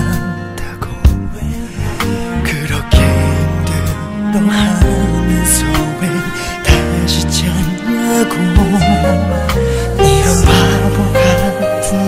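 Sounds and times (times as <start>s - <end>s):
man singing pop ballad: 0.0s - 12.0s
sustained bass notes: 0.0s - 12.0s.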